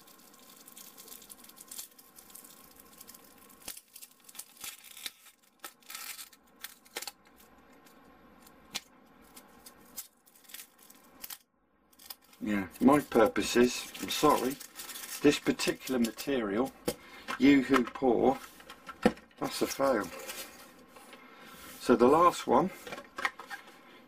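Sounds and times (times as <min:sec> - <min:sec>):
foam strips tearing apart: 0:00.0 - 0:07.2, 0:08.7 - 0:16.2.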